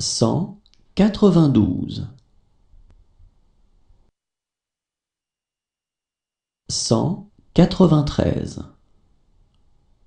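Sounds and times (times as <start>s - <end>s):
person speaking: 0.0s - 2.2s, 6.7s - 8.8s.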